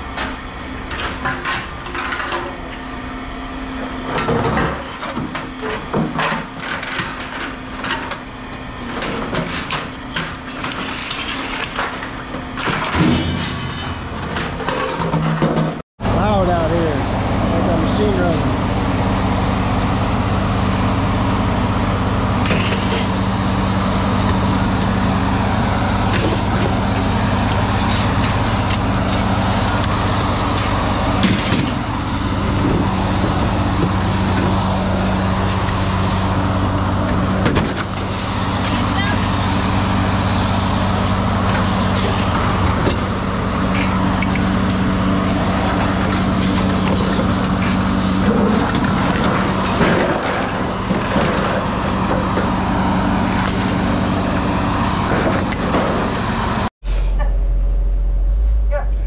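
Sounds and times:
scrap metal clanking: 0:12.6 - 0:15.8
vehicle engine idling: 0:16.1 - 0:59.0.

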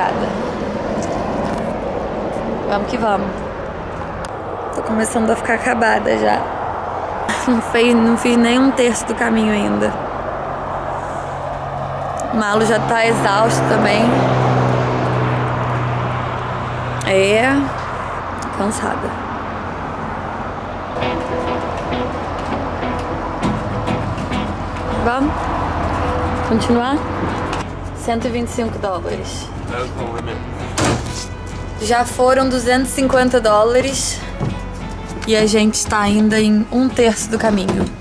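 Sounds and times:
broad rushing noise: 0:17.8 - 0:28.6
background music: 0:21.0 - 0:38.0
thud: 0:30.8 - 0:31.3.

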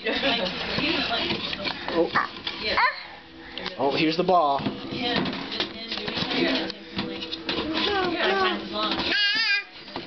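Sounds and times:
toddler babbling: 0:02.2 - 0:03.2, 0:07.8 - 0:09.8.

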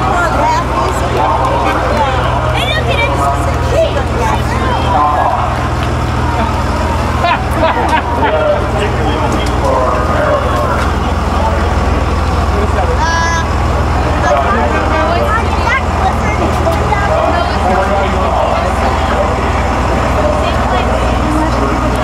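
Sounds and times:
bus engine running: 0:00.0 - 0:22.0
bystanders chattering: 0:00.0 - 0:22.0.

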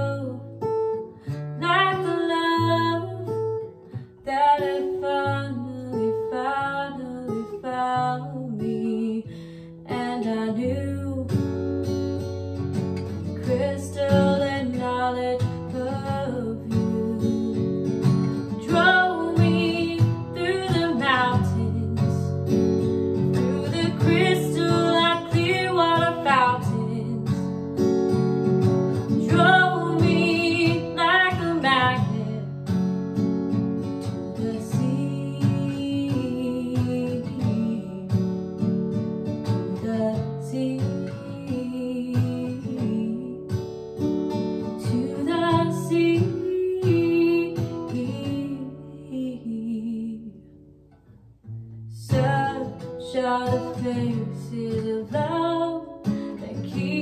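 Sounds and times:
woman singing: 0:00.0 - 0:32.8, 0:33.6 - 0:50.6, 0:51.8 - 0:57.0
acoustic guitar playing: 0:00.0 - 0:57.0.

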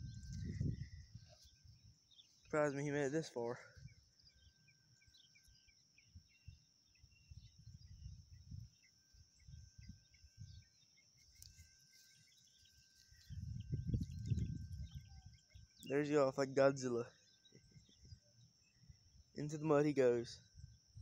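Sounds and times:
low rumbling on microphone: 0:00.0 - 0:01.8, 0:13.2 - 0:15.4
bird chirps: 0:00.0 - 0:21.0.

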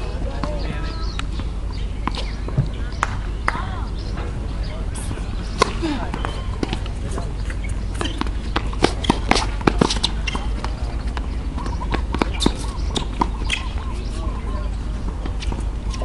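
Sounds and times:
steady low hum: 0:00.0 - 0:16.0
tennis ball bouncing: 0:05.4 - 0:13.8
racket hitting tennis ball: 0:05.5 - 0:06.9, 0:08.0 - 0:13.6.

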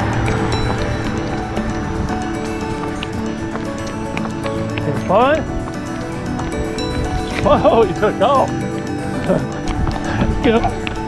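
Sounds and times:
background music sustained tones: 0:00.0 - 0:11.0
running footfalls on concrete: 0:00.0 - 0:11.0.

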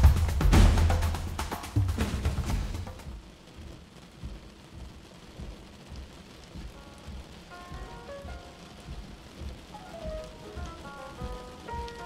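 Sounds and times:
rain and thunder rumbling: 0:00.0 - 0:12.0.

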